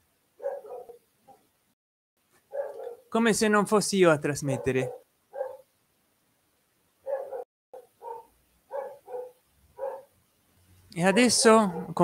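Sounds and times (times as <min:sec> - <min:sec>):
dog barking: 0:00.4 - 0:01.5, 0:02.5 - 0:03.1, 0:04.5 - 0:05.7, 0:07.0 - 0:10.1, 0:11.0 - 0:12.0.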